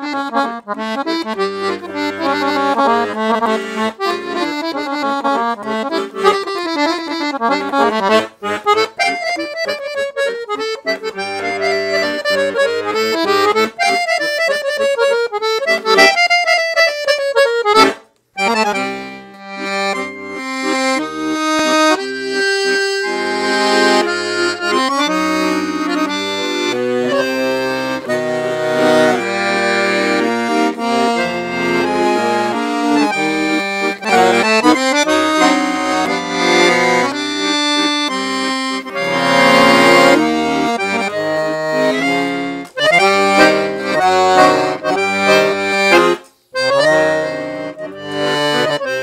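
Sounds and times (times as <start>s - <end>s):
piano accordion playing: 0.0s - 49.0s.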